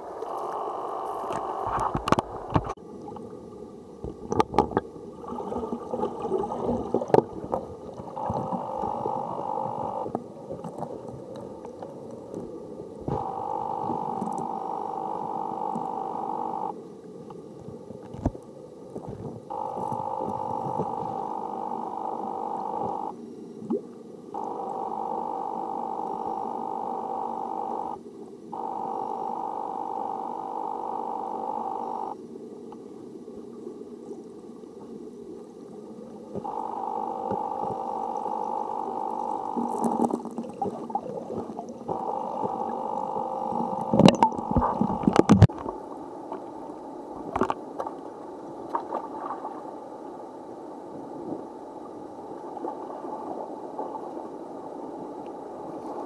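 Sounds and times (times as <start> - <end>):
muffled underwater noise: 0.0 - 56.0
steady hum: 0.0 - 56.0.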